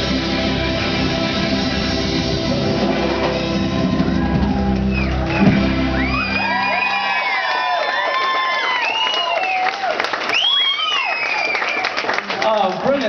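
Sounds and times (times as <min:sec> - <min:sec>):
live band music: 0:00.0 - 0:07.2
crowd cheering and whooping: 0:02.7 - 0:12.2
applause: 0:04.3 - 0:13.0.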